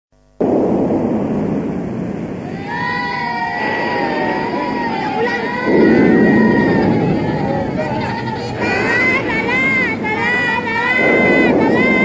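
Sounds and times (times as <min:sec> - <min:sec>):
steady rushing noise: 0:00.2 - 0:12.0.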